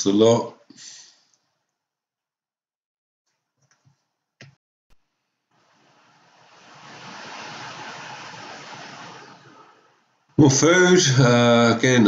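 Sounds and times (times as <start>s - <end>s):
car passing: 5.6s - 10.2s.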